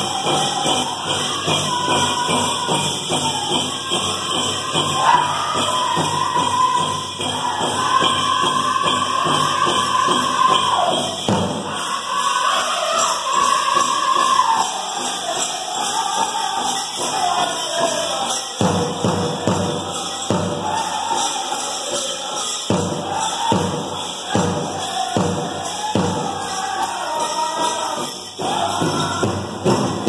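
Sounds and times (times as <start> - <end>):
group singing in high voices: 0.0 - 30.0
jingling ankle bells: 0.0 - 30.0
pounding big drum beat: 0.0 - 30.0.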